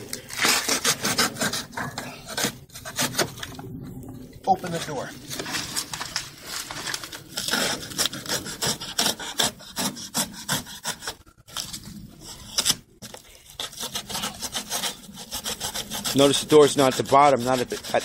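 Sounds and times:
knife sawing through cardboard: 0.2s - 3.3s, 7.3s - 18.0s.

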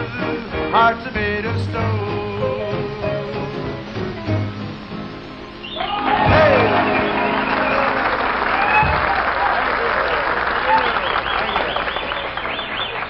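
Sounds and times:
people cheering: 5.6s - 13.0s
audience applauding: 5.7s - 13.0s.

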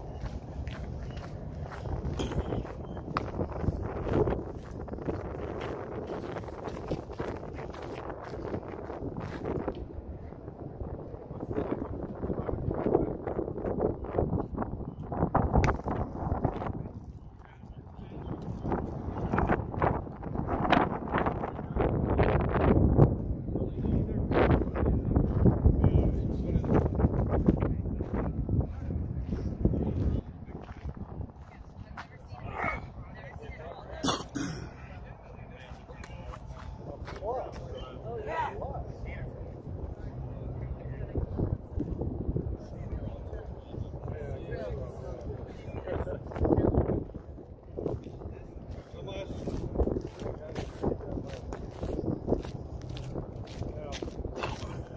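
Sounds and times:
wind buffeting microphone: 0.0s - 54.9s
faint talking: 31.3s - 41.6s.

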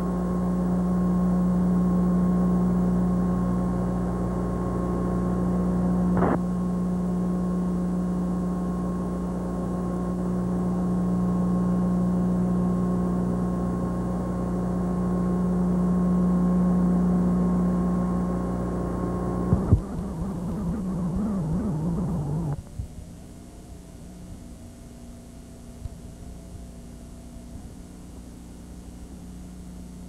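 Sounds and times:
steady low hum: 0.0s - 30.0s
wavering unsteady sound: 19.5s - 22.6s.

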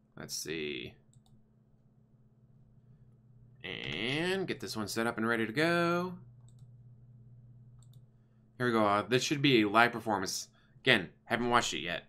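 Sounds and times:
low steady hum: 0.0s - 12.0s
computer mouse clicks: 6.4s - 6.7s, 7.8s - 8.1s.

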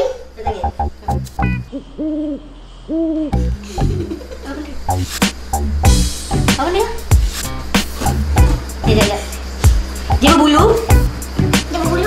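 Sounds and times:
low owl-like hoots: 1.7s - 4.2s.

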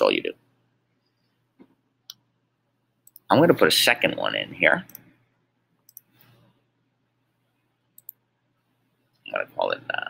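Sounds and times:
computer mouse clicks: 3.0s - 3.3s, 4.8s - 5.1s, 5.8s - 6.5s, 8.0s - 8.2s.

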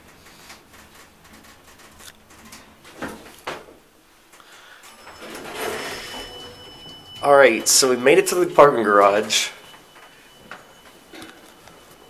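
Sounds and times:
elevator doors sliding open: 0.0s - 12.0s
faint steady high tone: 4.8s - 12.0s.

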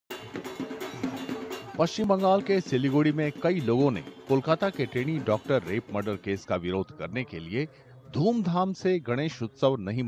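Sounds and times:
drums and metal percussion: 0.1s - 6.7s
man's voice: 1.7s - 10.0s.

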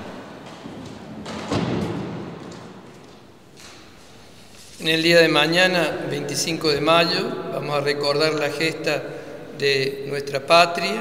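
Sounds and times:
faint steady background noise: 0.0s - 11.0s.

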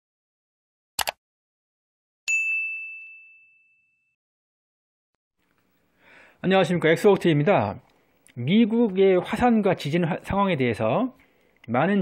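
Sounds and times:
bright bell ding: 2.3s - 4.1s.

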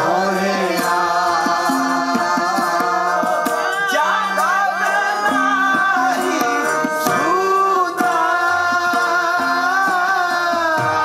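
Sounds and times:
harmonium chords: 0.0s - 11.0s
tabla strokes: 0.0s - 11.0s
voices singing a hymn: 0.0s - 11.0s.

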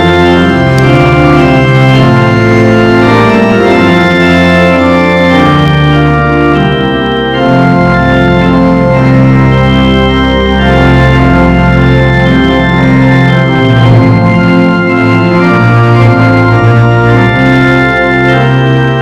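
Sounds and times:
church organ playing a hymn: 0.0s - 19.0s.

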